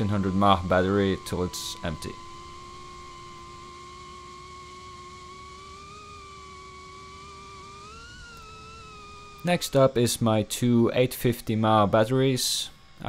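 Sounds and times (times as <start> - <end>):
drone propellers whining: 0.0 - 13.0.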